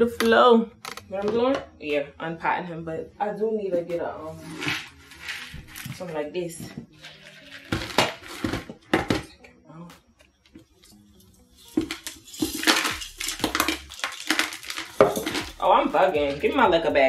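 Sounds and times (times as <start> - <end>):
gritty substrate rattling: 4.4 - 8.8, 11.7 - 16.6.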